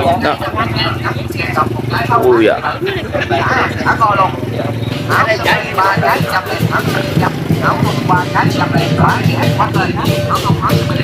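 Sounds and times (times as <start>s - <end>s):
motorbike engine running: 0.0s - 11.0s
people talking: 0.0s - 11.0s.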